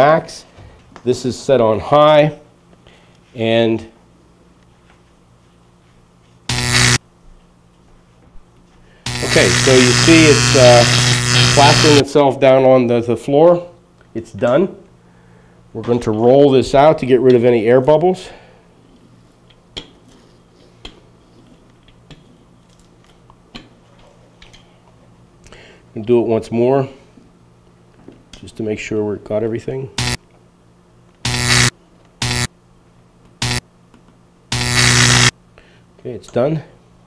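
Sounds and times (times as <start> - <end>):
faint steady hum: 0.0 - 37.0
loud electric buzz: 6.5 - 7.0, 9.0 - 12.0, 30.0 - 30.2, 31.2 - 32.6, 33.4 - 33.7, 34.5 - 35.4.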